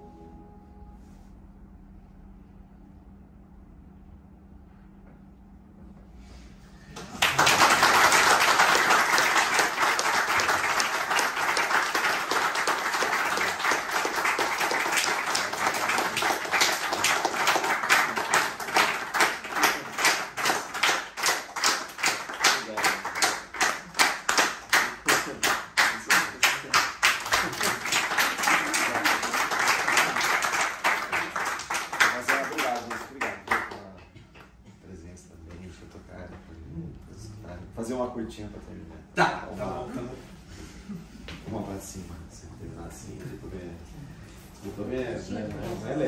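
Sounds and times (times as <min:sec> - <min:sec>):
audience applauding: 0:07.0 - 0:34.0
rhythmic clapping in unison: 0:07.0 - 0:34.6.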